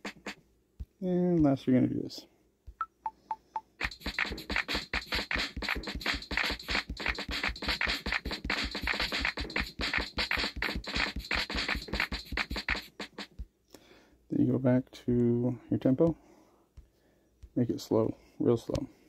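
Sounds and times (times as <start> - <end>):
fast drum-machine loop: 0.0 - 0.4, 3.6 - 13.5.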